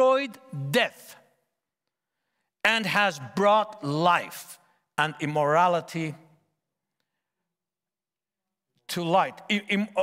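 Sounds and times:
man speaking: 0.0s - 1.4s, 2.6s - 6.4s, 8.8s - 10.0s.

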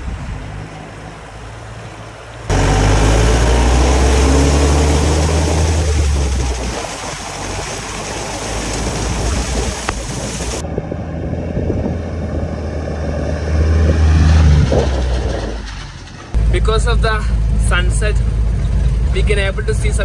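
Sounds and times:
water splashing and rushing: 0.0s - 10.7s
diesel engine drone: 2.1s - 20.0s.

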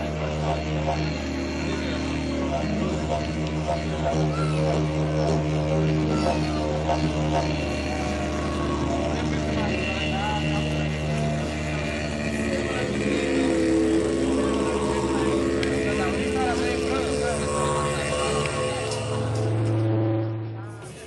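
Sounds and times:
didgeridoo drone: 0.0s - 21.0s
rising and falling pitch sweeps: 0.0s - 21.0s.

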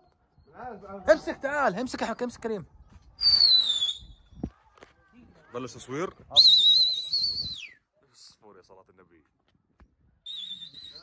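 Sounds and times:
person whistling sharply: 3.2s - 4.2s, 6.4s - 7.8s, 10.3s - 11.0s.

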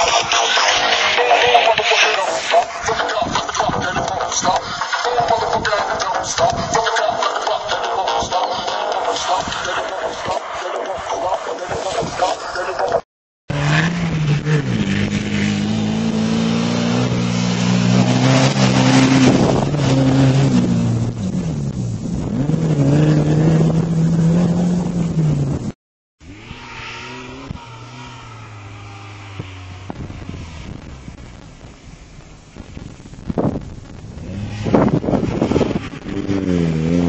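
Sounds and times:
wind on microphone: 2.5s - 7.4s, 17.7s - 25.7s, 29.3s - 37.0s
engine revving hard: 13.5s - 21.4s, 22.2s - 25.6s, 26.2s - 31.4s, 34.2s - 37.0s.

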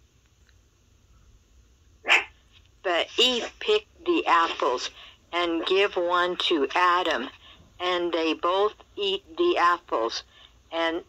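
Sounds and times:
person speaking: 2.9s - 11.0s.

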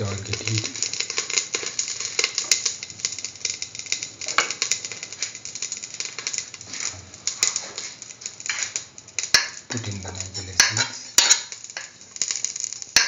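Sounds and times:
oil crackling in a pan: 0.0s - 13.0s.

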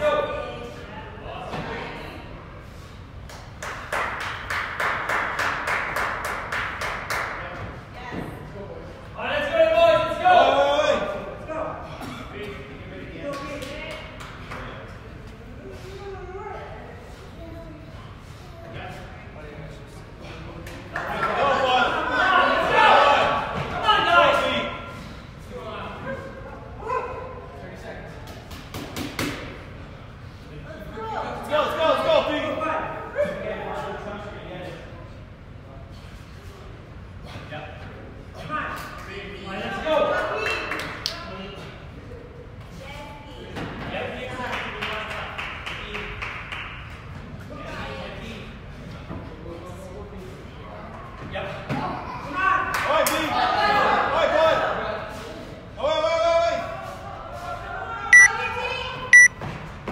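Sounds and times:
gym hall background noise: 0.0s - 59.9s
hands clapping: 3.2s - 7.6s, 13.2s - 14.7s, 40.4s - 41.2s.

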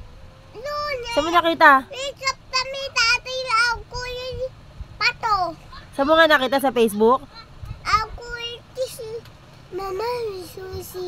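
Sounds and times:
boy chanting sing-song: 7.7s - 11.0s.

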